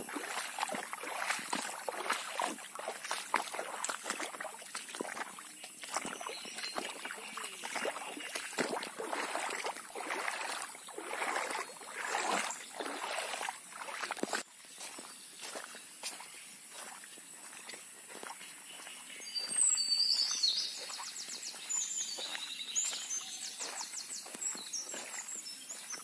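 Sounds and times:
footsteps on dirt path: 0.0s - 26.0s
bird chirps and trills: 18.7s - 26.0s.

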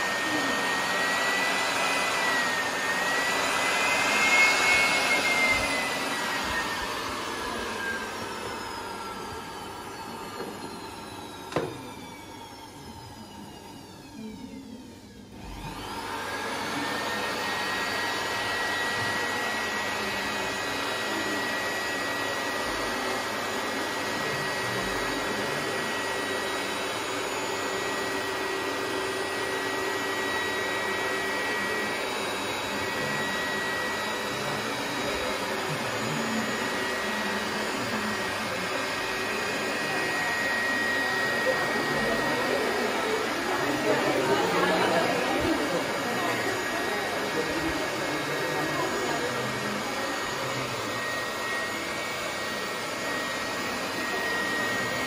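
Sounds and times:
electric air blower whining: 0.0s - 55.0s.

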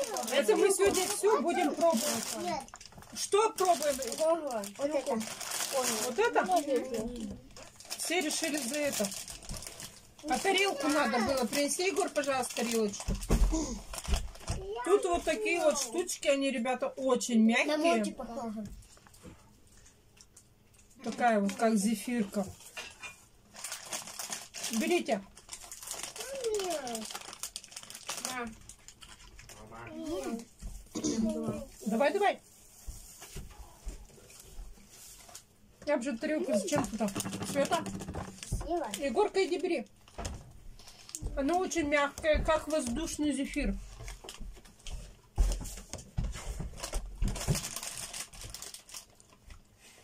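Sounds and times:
plastic sweets bag crinkling: 0.0s - 16.2s, 23.4s - 30.6s, 36.1s - 45.6s, 46.7s - 49.6s.

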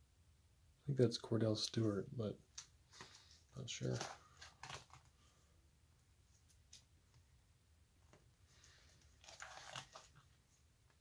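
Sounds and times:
plastic page sleeves crinkling: 2.6s - 5.3s, 8.5s - 10.4s.

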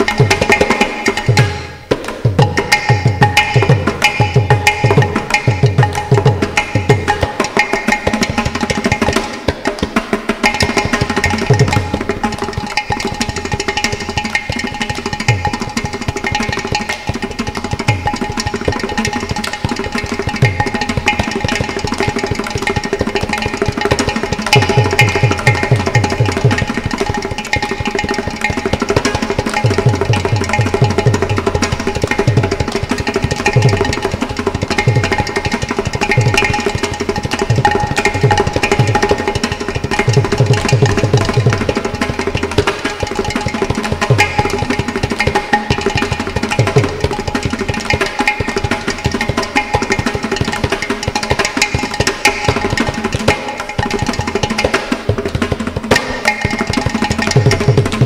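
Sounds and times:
hand drum and clay pot strokes: 0.0s - 58.0s.

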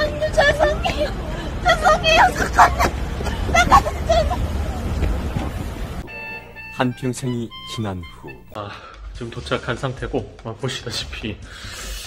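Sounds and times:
low traffic rumble: 0.0s - 8.6s.

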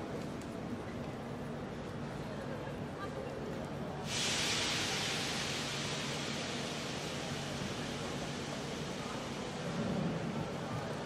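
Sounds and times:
murmur of station crowd: 0.0s - 11.0s
train air brake hiss: 4.0s - 10.6s.

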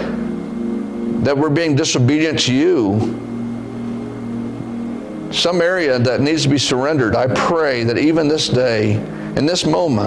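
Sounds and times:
soft keyboard chord: 0.0s - 10.0s.

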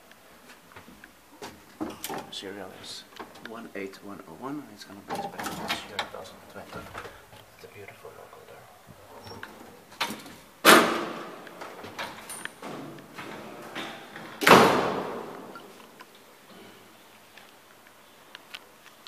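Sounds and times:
metal gates clanging shut: 5.0s - 7.2s, 9.1s - 15.7s
latch click: 9.4s - 15.6s.

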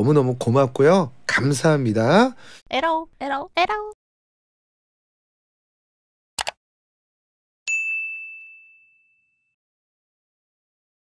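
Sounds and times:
notification chime ding: 7.7s - 9.5s.

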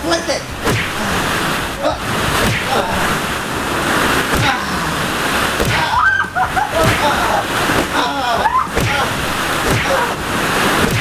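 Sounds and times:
dull thumps into balls: 4.3s - 4.6s, 5.6s - 6.0s, 8.7s - 10.0s
person shouting or laughing: 5.7s - 9.2s.

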